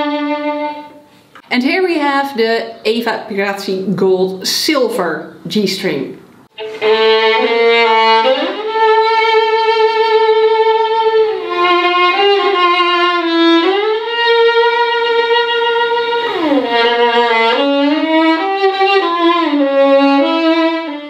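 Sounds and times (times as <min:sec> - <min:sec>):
solo violin sliding melody: 0:00.0 - 0:01.1, 0:06.5 - 0:21.0.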